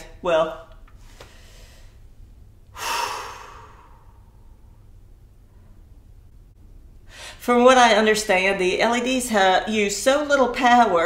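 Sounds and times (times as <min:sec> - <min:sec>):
woman sighing: 0:02.7 - 0:04.3.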